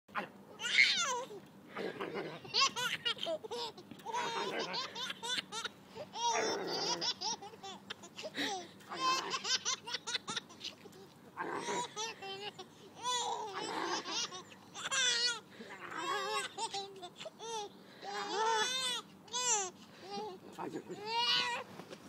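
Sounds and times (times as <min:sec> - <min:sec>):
toddler giggling: 0:00.6 - 0:15.4.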